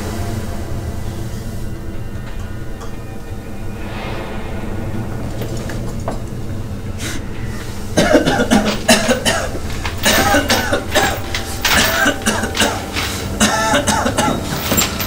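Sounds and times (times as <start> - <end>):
low steady drone: 0.0 - 15.0.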